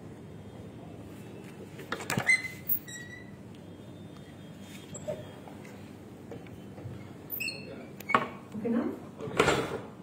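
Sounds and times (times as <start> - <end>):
short high squeak: 2.2 - 3.4, 7.3 - 7.8.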